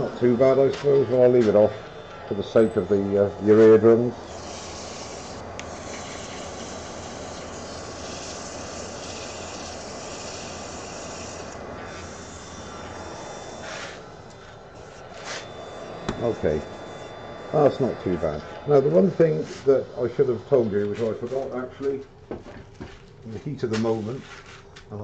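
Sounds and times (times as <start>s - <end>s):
lathe running hum: 0.0s - 24.6s
sandpaper rasping on spinning wood: 2.5s - 14.0s.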